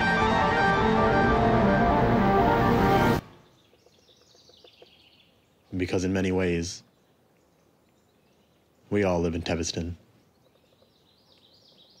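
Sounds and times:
background music: 0.0s - 3.5s
faint outdoor ambience: 0.0s - 12.0s.

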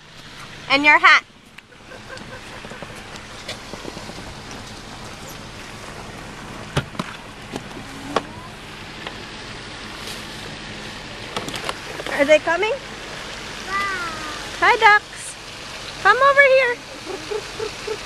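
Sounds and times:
car engine idling: 0.0s - 18.0s
constant hiss: 0.0s - 18.0s.

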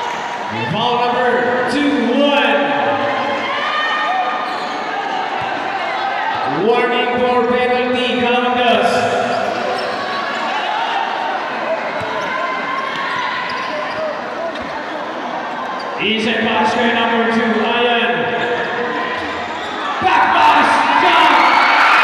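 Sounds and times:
spectators' voices echoing: 0.0s - 22.0s.

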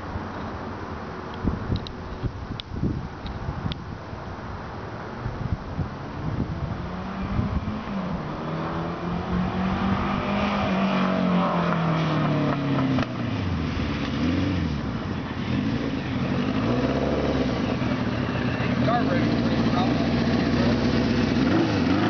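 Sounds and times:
motorcycle engine revving: 6.4s - 22.0s.

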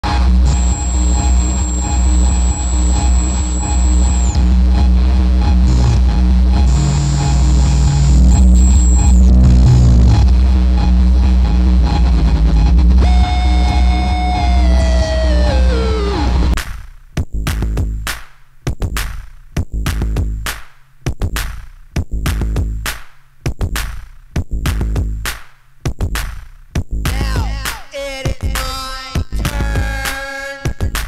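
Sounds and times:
noisy electronic music: 0.3s - 9.4s, 10.2s - 16.6s
high whistling tone: 0.5s - 4.4s, 7.8s - 9.2s.

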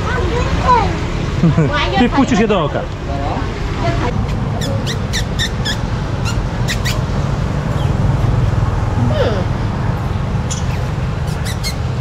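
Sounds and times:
street traffic rumble: 0.0s - 12.0s
parakeets chirping: 4.1s - 8.3s, 10.3s - 12.0s.

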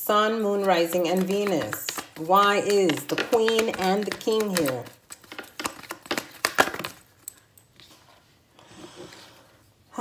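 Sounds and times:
cards being shuffled: 0.5s - 7.2s
soft handling of cards: 0.6s - 8.5s.

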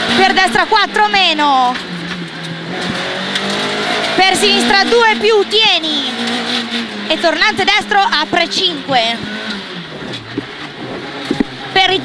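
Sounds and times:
car engine from inside cabin: 0.0s - 12.0s.

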